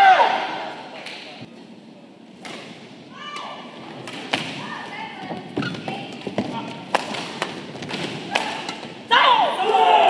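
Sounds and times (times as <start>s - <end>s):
people shouting: 0.0s - 0.7s, 8.3s - 10.0s.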